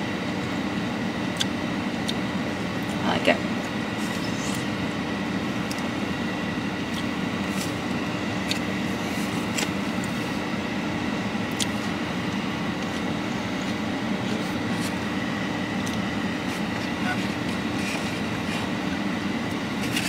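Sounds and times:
air-conditioning fan: 0:00.0 - 0:20.0
car engine idling hum: 0:00.0 - 0:20.0.

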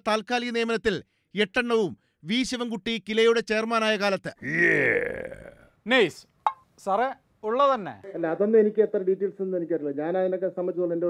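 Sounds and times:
man speaking: 0:05.8 - 0:11.0.

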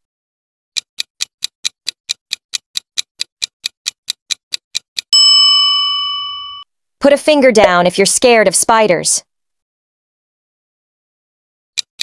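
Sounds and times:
clock ticking quickly: 0:00.8 - 0:05.1
bell ding: 0:05.2 - 0:06.6.

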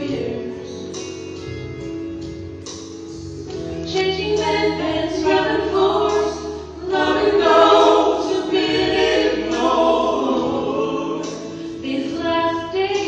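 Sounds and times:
group singing in harmony: 0:00.0 - 0:00.9, 0:04.0 - 0:13.0.

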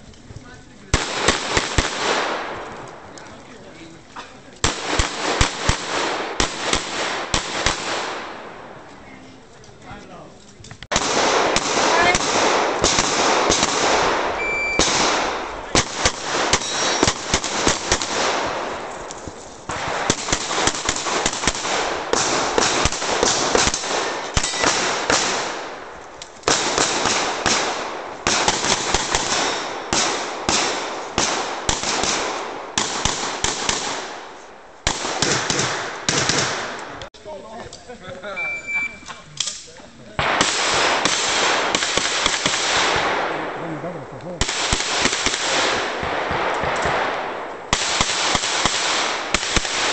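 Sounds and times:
handgun shots with echo: 0:10.9 - 0:18.7, 0:34.9 - 0:36.9.

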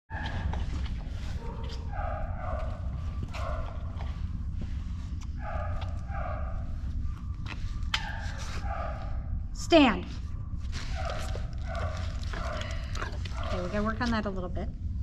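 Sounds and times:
steady low hum: 0:00.1 - 0:15.0.

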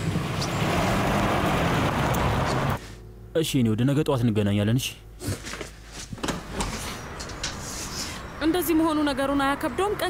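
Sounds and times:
car engine and road noise: 0:00.0 - 0:03.3, 0:05.6 - 0:10.0.

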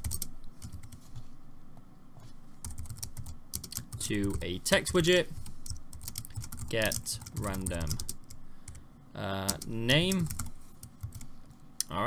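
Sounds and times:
computer keyboard typing: 0:00.0 - 0:01.0, 0:02.6 - 0:08.8, 0:09.5 - 0:11.3.

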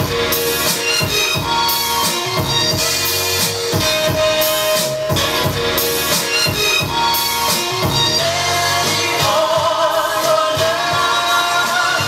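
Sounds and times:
hip-hop beat: 0:00.0 - 0:12.0.

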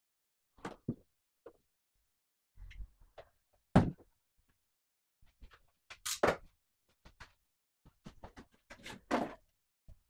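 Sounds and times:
plastic parts knocking and scraping: 0:05.4 - 0:09.5.

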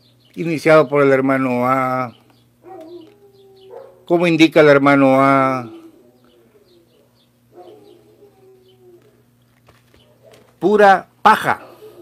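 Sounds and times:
faint animal call: 0:05.3 - 0:09.4
person talking: 0:10.6 - 0:12.0.

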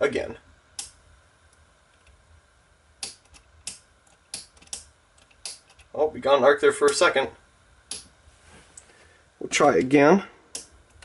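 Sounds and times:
faint low hum: 0:00.0 - 0:11.0
sharp irregular electrical clicks: 0:00.7 - 0:02.2, 0:02.9 - 0:06.0, 0:06.6 - 0:08.2, 0:09.7 - 0:11.0.

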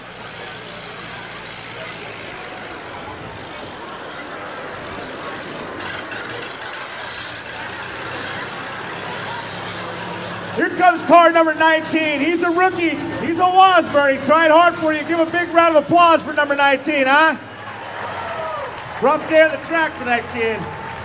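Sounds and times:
car engine running: 0:00.0 - 0:21.0.

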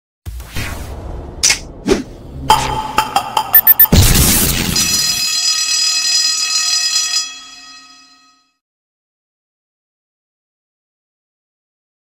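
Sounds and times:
loud hit with whoosh: 0:00.4 - 0:04.8.

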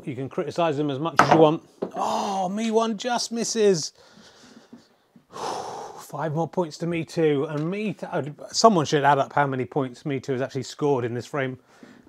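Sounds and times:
man breathing loudly: 0:04.0 - 0:06.1.

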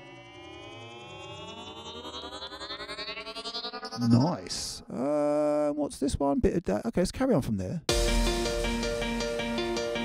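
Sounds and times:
synth riser gliding tones: 0:00.0 - 0:04.9.

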